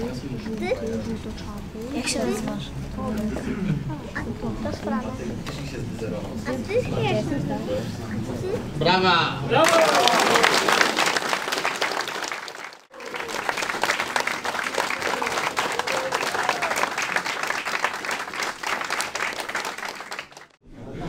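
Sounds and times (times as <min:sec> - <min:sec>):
crowd applauding: 0:09.5 - 0:20.6.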